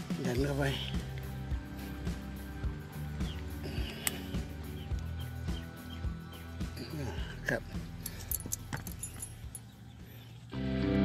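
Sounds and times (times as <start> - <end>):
metal parts clicking and clinking: 8.0 - 9.7.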